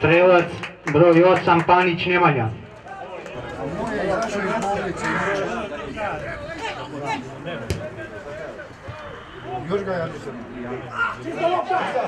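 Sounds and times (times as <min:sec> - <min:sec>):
people shouting and calling: 0:02.8 - 0:12.0
football being kicked: 0:07.6 - 0:07.9.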